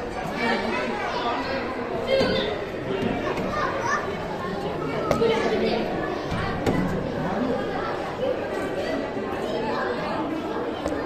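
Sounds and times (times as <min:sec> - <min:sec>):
chatter of visitors: 0:00.0 - 0:11.0
children's voices and shouts: 0:00.0 - 0:11.0.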